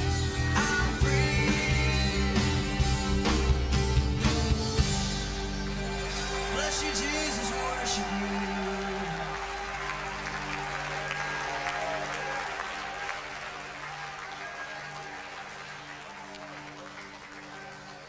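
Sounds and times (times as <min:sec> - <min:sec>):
congregation applauding: 0:05.5 - 0:18.0.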